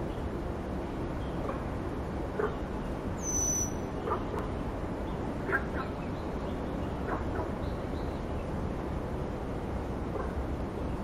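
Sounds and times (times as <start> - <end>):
bird whistled call: 3.2 - 3.9.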